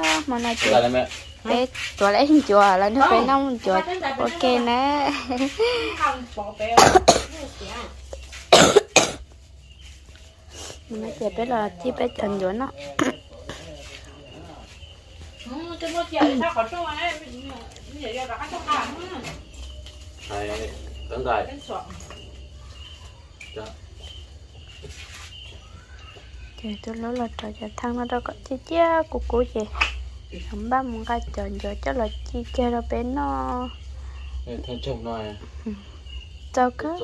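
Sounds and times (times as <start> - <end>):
person coughing: 6.8 - 7.4, 8.5 - 9.2, 13.0 - 13.2.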